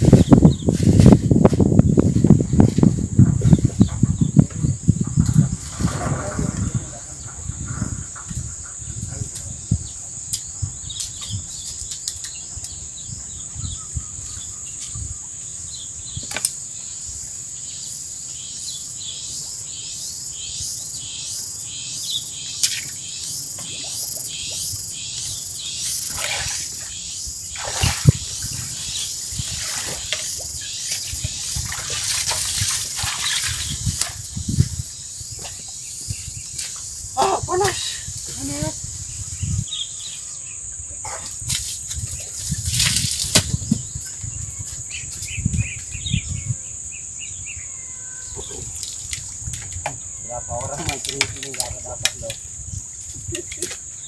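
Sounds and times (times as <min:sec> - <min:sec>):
wind rumbling on microphone: 0:00.0 - 0:18.4, 0:22.9 - 0:54.0
insect chirping: 0:00.0 - 0:54.0
high-pitched insect drone: 0:32.6 - 0:54.0.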